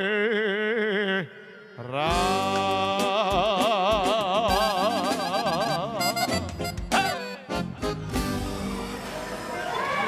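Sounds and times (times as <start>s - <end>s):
person singing long notes: 0.0s - 7.8s
music: 1.8s - 10.0s.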